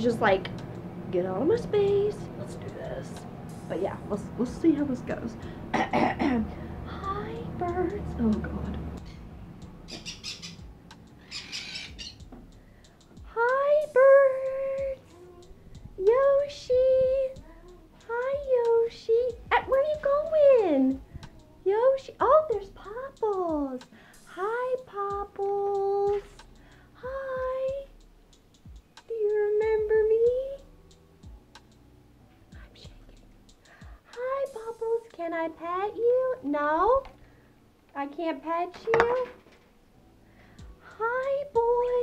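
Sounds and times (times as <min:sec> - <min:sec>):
parrot squawking: 0:09.0 - 0:09.3, 0:09.9 - 0:12.2.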